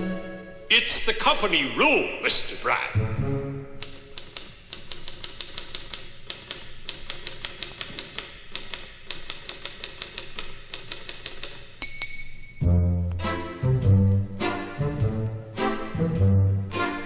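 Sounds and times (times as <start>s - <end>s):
quiet orchestral accompaniment: 0.0s - 3.8s, 12.6s - 17.0s
typewriter keys clacking: 3.8s - 12.0s.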